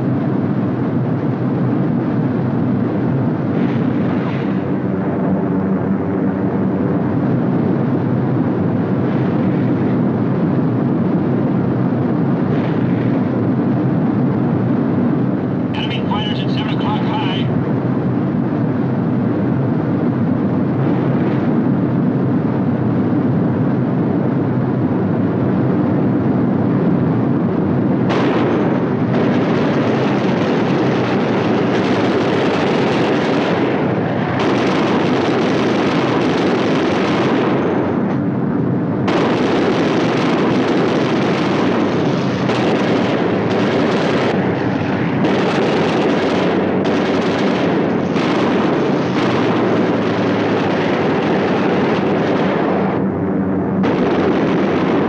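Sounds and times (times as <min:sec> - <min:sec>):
aircraft engines droning: 0:00.0 - 0:55.0
explosions: 0:12.4 - 0:13.8, 0:15.8 - 0:17.5, 0:28.0 - 0:55.0
gunfire: 0:28.1 - 0:38.1, 0:39.0 - 0:44.5, 0:45.2 - 0:53.0, 0:53.8 - 0:55.0.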